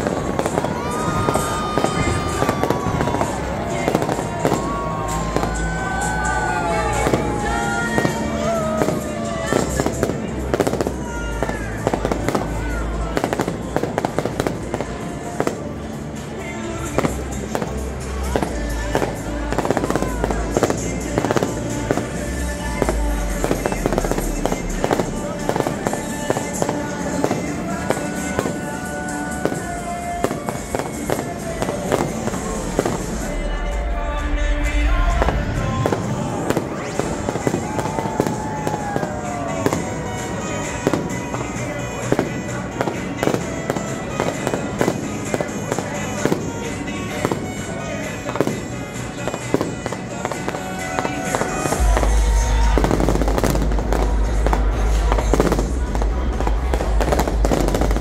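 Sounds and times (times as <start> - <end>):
fireworks bangs and crackles: 0.0 - 58.0.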